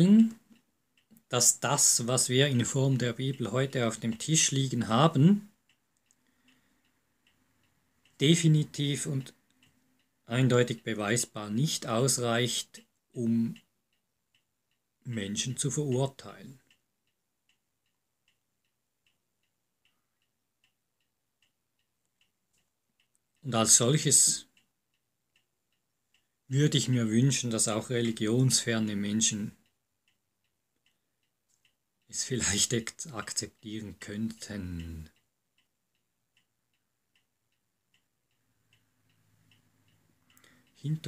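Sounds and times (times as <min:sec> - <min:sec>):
faint regular ticking: 0:00.0 - 0:41.0.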